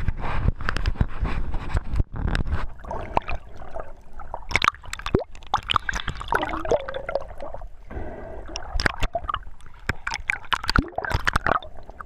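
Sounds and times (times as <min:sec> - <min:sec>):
churning water underwater: 0:00.0 - 0:12.0.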